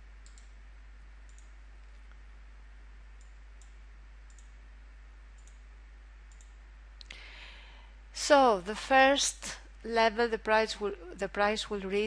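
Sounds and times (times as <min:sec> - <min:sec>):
steady low hum: 0:00.0 - 0:12.0
computer mouse clicks: 0:00.2 - 0:00.6, 0:01.3 - 0:02.2, 0:03.2 - 0:04.6, 0:05.4 - 0:05.6, 0:06.3 - 0:06.6.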